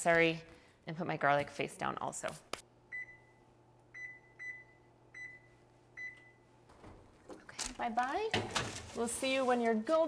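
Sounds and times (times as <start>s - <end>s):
oven control panel beeps: 2.9s - 6.5s.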